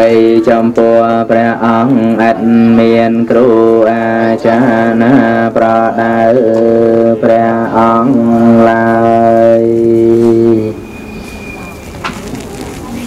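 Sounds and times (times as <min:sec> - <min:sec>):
man chanting in low voice: 0:00.0 - 0:10.8.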